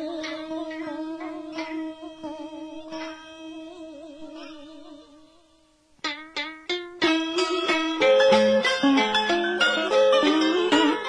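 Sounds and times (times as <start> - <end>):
plucked string notes: 0.0 - 5.3, 6.0 - 11.0
wavering held melody tone: 0.0 - 5.4, 6.7 - 11.0.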